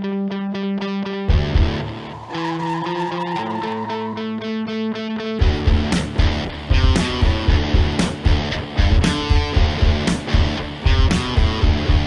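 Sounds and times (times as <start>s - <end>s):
distorted electric guitar music: 0.0s - 12.0s
car tyres squealing: 1.6s - 5.2s.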